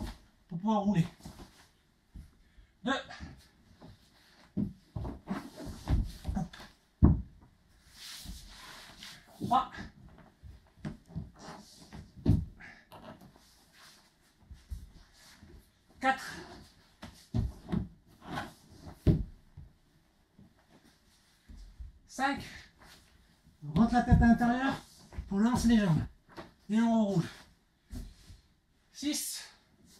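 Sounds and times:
body thudding on wooden floor: 0:03.8 - 0:07.6, 0:17.0 - 0:19.8.

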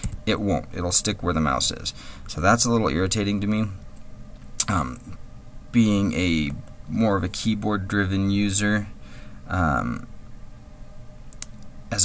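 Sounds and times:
steady low hum: 0:00.0 - 0:12.0
man speaking: 0:00.2 - 0:03.8, 0:04.6 - 0:10.1
small sharp clicks: 0:11.3 - 0:11.7.

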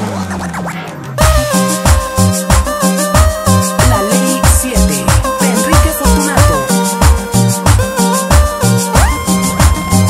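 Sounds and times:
cumbia dance music: 0:00.0 - 0:10.0
keyboard chords and drum beat: 0:00.0 - 0:10.0.

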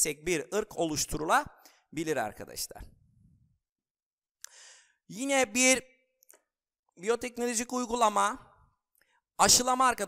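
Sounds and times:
faint mouth click: 0:04.4 - 0:04.6
man's short intake of breath: 0:04.5 - 0:05.0.

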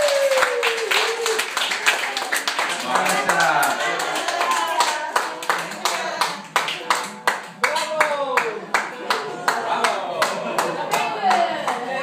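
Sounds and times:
audience clapping: 0:00.0 - 0:12.0.

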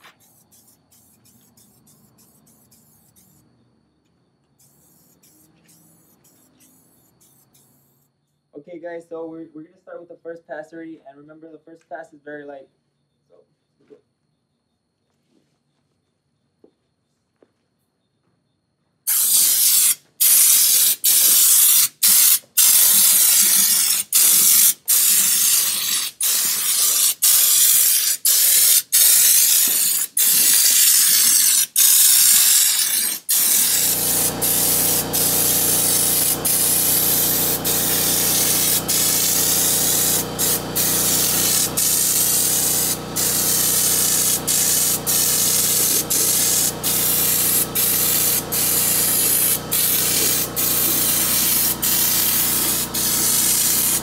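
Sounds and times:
spray gun hissing: 0:00.0 - 0:03.4, 0:04.6 - 0:08.0, 0:19.1 - 0:54.0.

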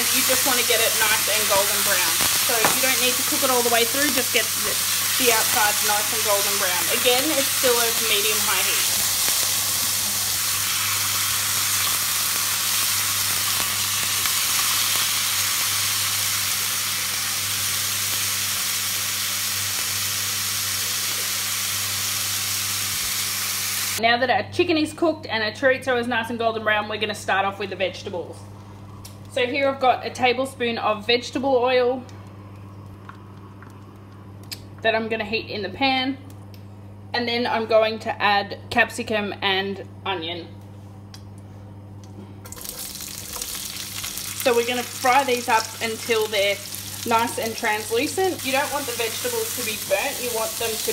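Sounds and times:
chicken sizzling in frying pan: 0:00.0 - 0:24.0, 0:42.4 - 0:50.9.

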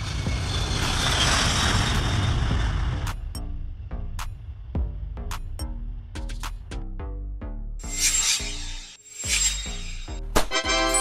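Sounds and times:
jet engines at takeoff: 0:00.0 - 0:04.8.

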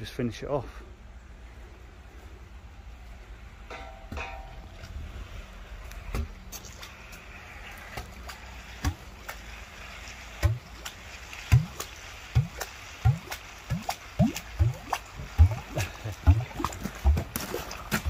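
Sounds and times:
wet concrete gurgling from hose: 0:05.2 - 0:18.0.

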